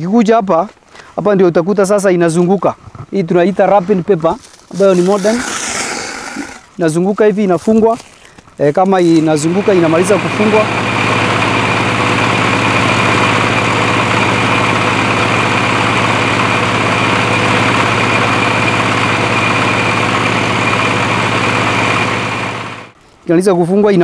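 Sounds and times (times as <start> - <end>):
baler machine hum and whine: 9.1 - 23.0.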